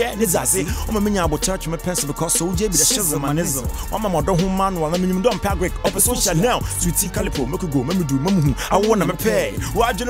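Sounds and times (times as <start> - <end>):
hip hop beat with bass: 0.0 - 10.0
man rapping: 0.0 - 10.0.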